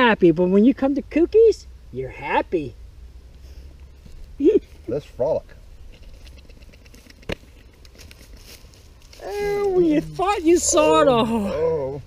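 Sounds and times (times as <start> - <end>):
campfire crackling: 1.5 - 12.0.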